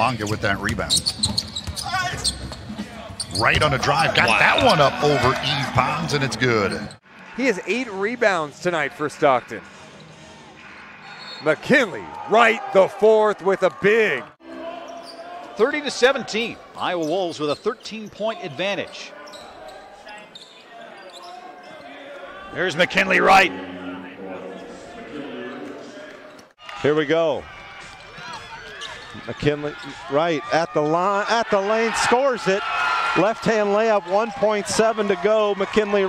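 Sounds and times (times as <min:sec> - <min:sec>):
faint voices of players and crowd: 0:00.0 - 0:36.0.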